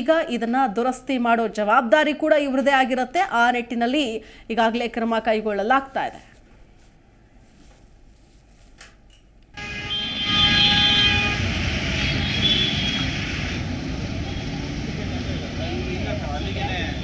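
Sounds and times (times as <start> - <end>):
traffic running: 9.6 - 17.0
vehicle horn: 9.6 - 17.0.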